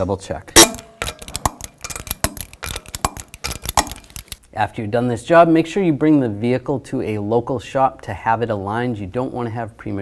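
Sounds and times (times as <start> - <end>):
torque wrench clicking: 0.6 - 4.4.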